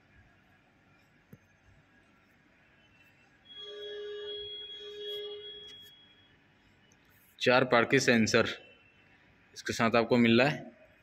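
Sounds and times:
parking sensor steady beep: 3.4 - 6.3.

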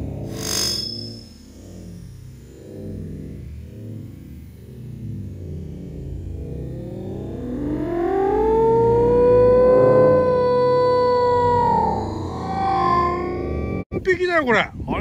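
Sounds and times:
rising siren-like tone: 0.0 - 13.9.

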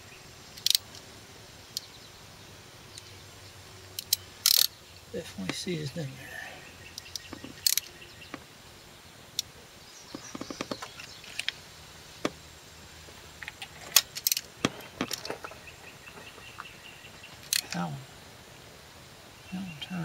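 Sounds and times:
sharp metallic clicks: 0.5 - 1.1, 3.9 - 5.6, 6.9 - 7.9, 17.4 - 17.9
socket ratchet clicking: 0.6 - 0.9, 4.0 - 4.7, 7.0 - 7.9.

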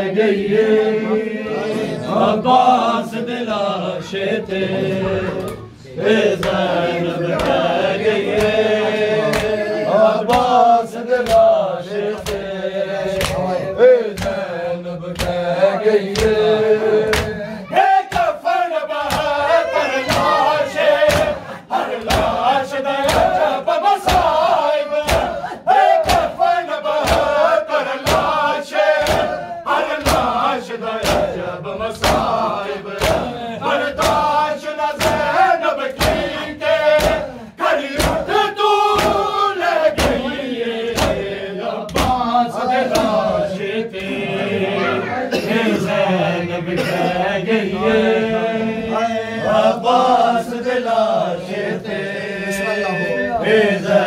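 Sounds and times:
men chanting a lament: 0.0 - 54.0
hands slapping chests: 9.3 - 9.6, 10.3 - 10.6, 11.2 - 12.5, 13.1 - 14.5, 15.1 - 16.4, 17.1 - 17.4, 18.1 - 18.4, 19.0 - 19.4, 20.0 - 20.4, 21.0 - 22.4, 23.0 - 26.4, 27.0 - 29.4, 30.0 - 31.4, 32.0 - 33.3, 33.9 - 40.3, 40.9 - 41.3, 41.9 - 42.3, 42.9 - 43.2.

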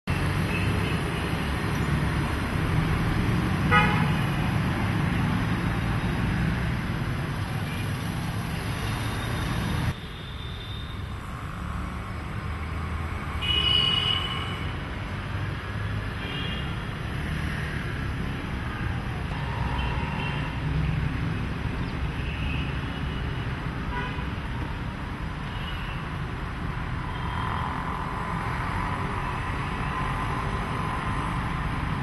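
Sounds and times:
street traffic: 0.0 - 32.0.

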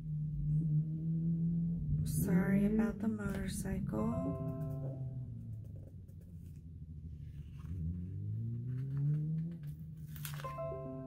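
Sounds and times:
motorcycle engine accelerating: 0.0 - 11.0
sticker paper rustling: 7.3 - 10.6.

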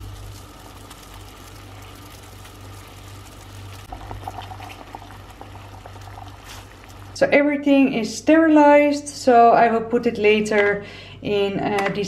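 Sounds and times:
water boiling in a pot: 0.0 - 9.1.

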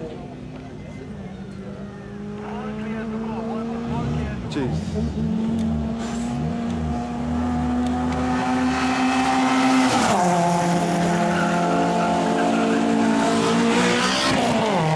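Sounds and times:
car engine at high revs passing: 1.8 - 14.9.

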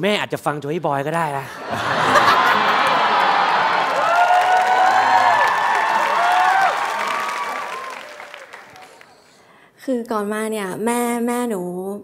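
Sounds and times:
audience applauding: 1.7 - 9.4
voices cheering: 1.8 - 9.1.

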